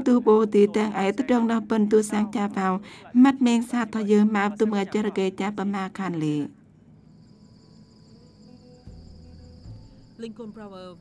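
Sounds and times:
field insects chirring: 0.0 - 11.0.

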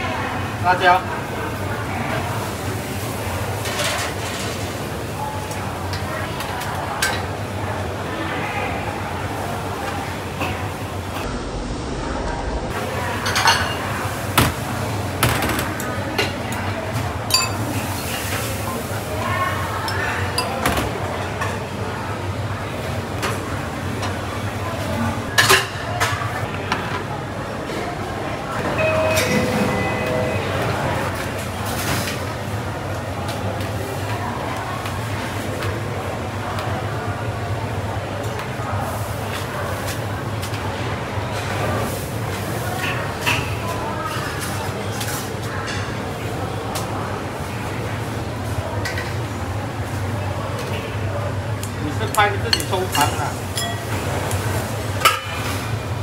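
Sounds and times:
steady low hum: 11.2 - 13.0
bowls and utensils clinking: 17.2 - 18.6, 19.5 - 21.6, 52.5 - 54.4.

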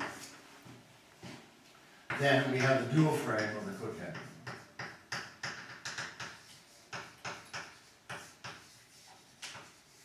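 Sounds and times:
chalk tapping and scratching on chalkboard: 0.0 - 0.4, 2.1 - 10.0.

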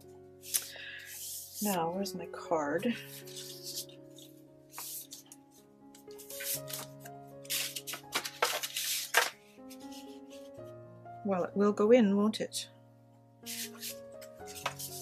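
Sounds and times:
soft background music: 0.0 - 15.0
paper rustling: 0.4 - 1.8, 2.9 - 10.6, 13.5 - 15.0.

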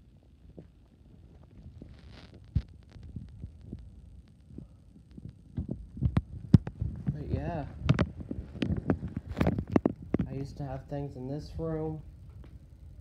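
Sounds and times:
low rumble: 0.0 - 13.0
footsteps: 4.6 - 10.8.

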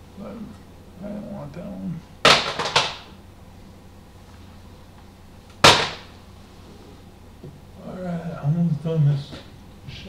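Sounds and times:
plastic cases clacking: 2.3 - 3.1.

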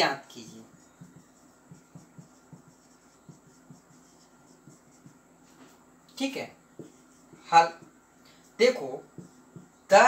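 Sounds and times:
marker pen writing on whiteboard: 0.0 - 10.0.

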